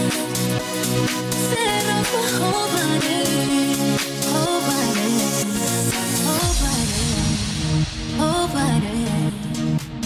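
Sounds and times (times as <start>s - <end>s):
electronic dance music: 0.0s - 10.0s.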